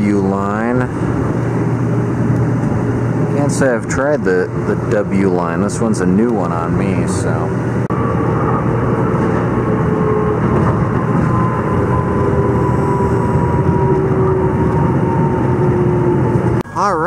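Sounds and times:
train motor whine: 0.0 - 16.6
train rumble and rush: 0.0 - 16.7.

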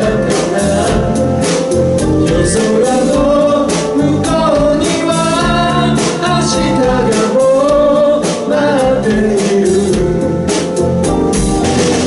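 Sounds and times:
man singing: 0.0 - 10.8
drum kit steady beat: 0.0 - 12.0
live pop band playing: 0.0 - 12.0.

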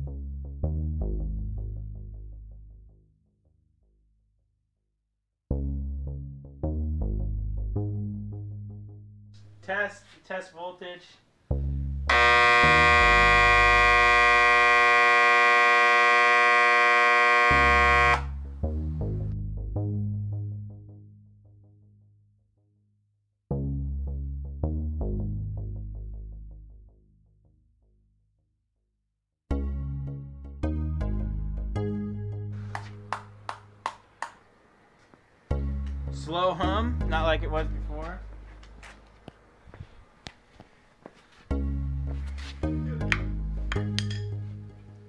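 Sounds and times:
background music: 0.0 - 3.1, 5.5 - 9.9, 11.4 - 21.9, 23.5 - 27.0, 29.5 - 34.2, 35.4 - 38.6, 41.5 - 45.0
transformer buzzing: 12.1 - 18.4
electronic background music: 35.5 - 38.3, 41.6 - 44.7.

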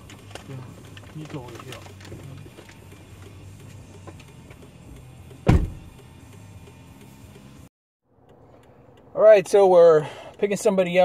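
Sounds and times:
low car cabin hum: 0.0 - 11.0
car door shutting: 5.3 - 6.0.

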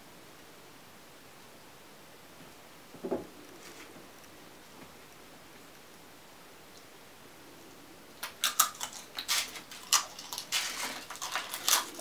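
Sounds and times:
chips being crunched: 8.2 - 12.0.

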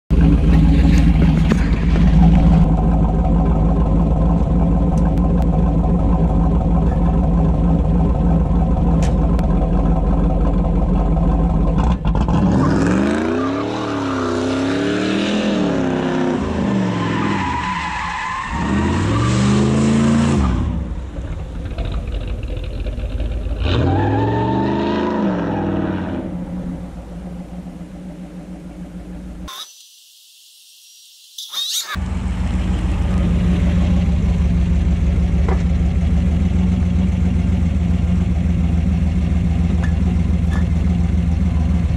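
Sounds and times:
car engine revving: 0.1 - 17.8, 18.4 - 29.5
tires squealing: 12.3 - 20.8, 23.6 - 26.5.

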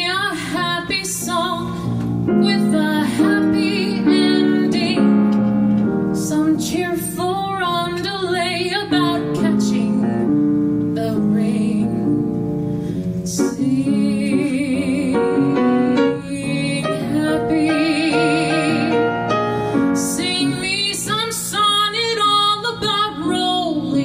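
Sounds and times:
woman singing with vibrato: 0.0 - 5.3, 6.2 - 10.3, 11.0 - 12.2, 13.3 - 24.0
piano: 0.0 - 24.0.

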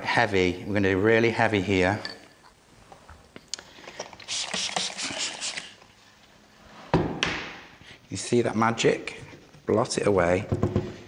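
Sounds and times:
spray bottle spritzing: 4.2 - 5.8.

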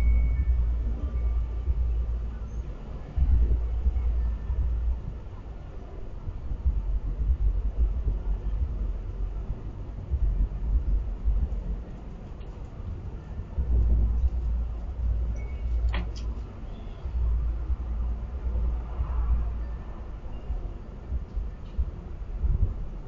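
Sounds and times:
low uneven rumble: 0.0 - 23.0.

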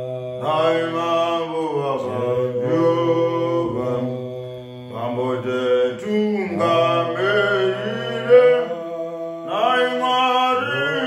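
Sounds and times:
men singing unaccompanied: 0.0 - 11.0.

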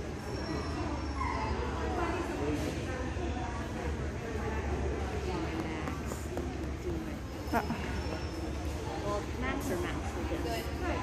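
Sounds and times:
chatter in large hall: 0.0 - 11.0.

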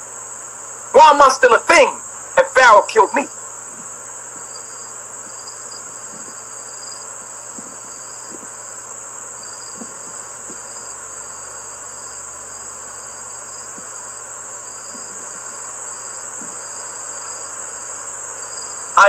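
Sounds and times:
crickets chirping: 0.0 - 19.0.

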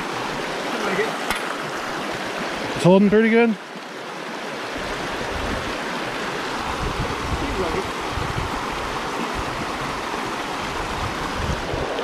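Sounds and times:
creek water running: 0.0 - 12.0
water rushing through sluice box: 0.0 - 12.0.

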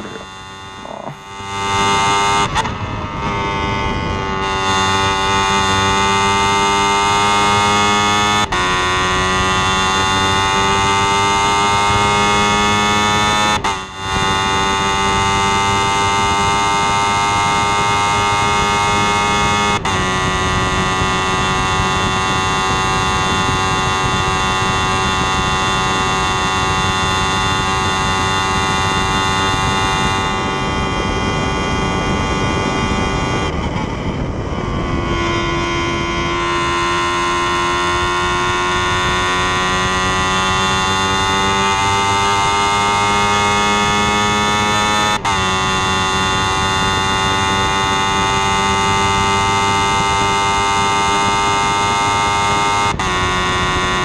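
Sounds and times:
man talking: 0.0 - 1.2
racing car engine at high revs: 0.0 - 54.0.

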